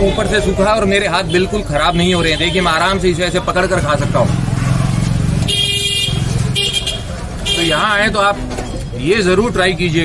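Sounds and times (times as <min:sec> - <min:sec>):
vehicle horn honking: 0:05.5 - 0:08.0.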